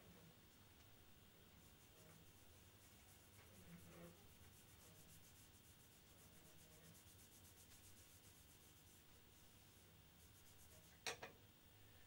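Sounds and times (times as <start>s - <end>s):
tissue rubbing painted surface: 1.6s - 11.0s.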